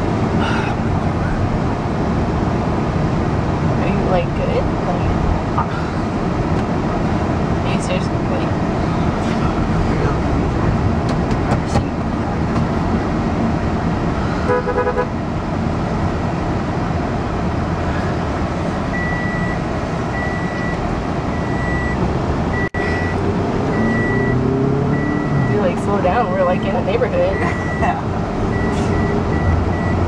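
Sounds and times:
road and engine noise in car: 0.0s - 30.0s
high electronic beep: 19.0s - 19.6s, 20.2s - 22.0s, 22.6s - 25.7s.

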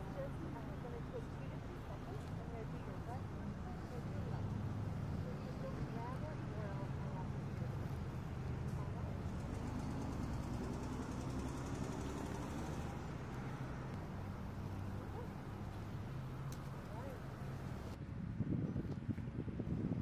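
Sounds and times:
faint muffled voices: 0.0s - 10.0s, 16.6s - 17.9s.

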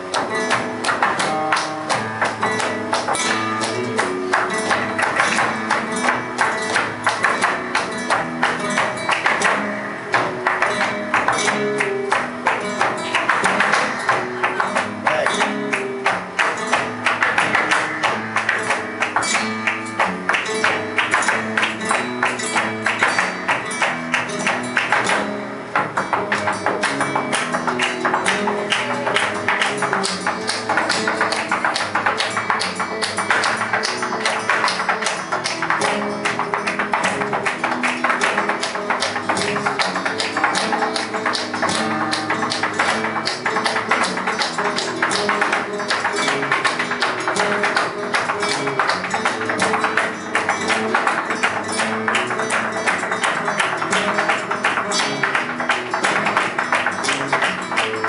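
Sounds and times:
flamenco guitar playing: 0.0s - 58.0s
footwork tapping on floor: 0.0s - 58.0s
rapid hand clapping: 0.0s - 58.0s.

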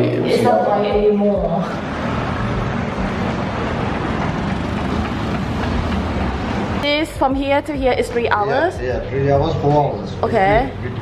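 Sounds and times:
vehicles passing close by: 0.0s - 11.0s.

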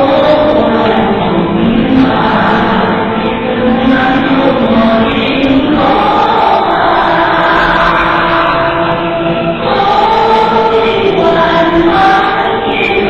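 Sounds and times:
group chanting in unison: 0.0s - 13.0s.

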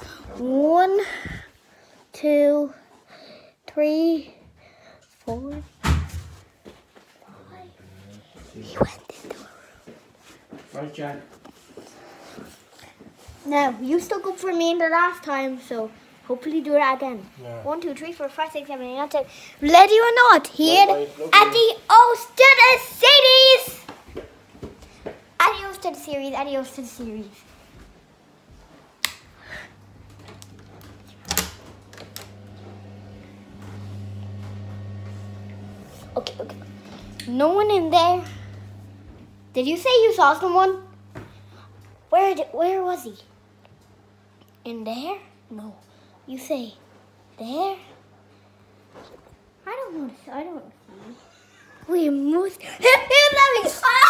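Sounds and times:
low electrical hum: 0.0s - 54.0s.

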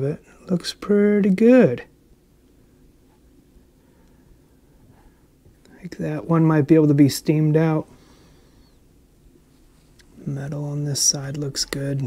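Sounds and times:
faint low hum: 0.0s - 12.0s
man speaking: 5.7s - 7.9s, 10.2s - 12.0s.

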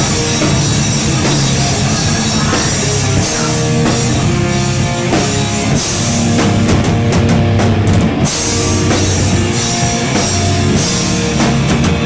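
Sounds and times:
distorted electric guitars: 0.0s - 12.0s
pounding drum kit: 0.0s - 12.0s.

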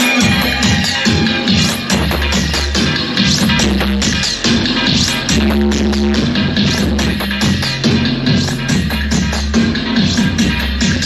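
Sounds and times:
dub music with deep bass: 0.0s - 11.0s.

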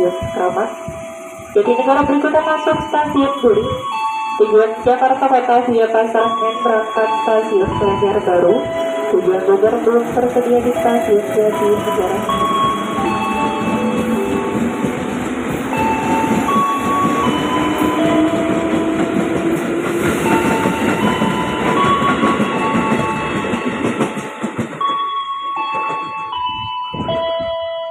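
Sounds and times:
electric train rumbling past: 0.0s - 27.9s.

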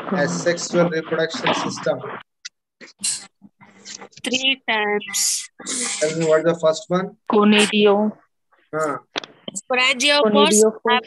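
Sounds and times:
broken voice over video call: 0.0s - 11.0s.

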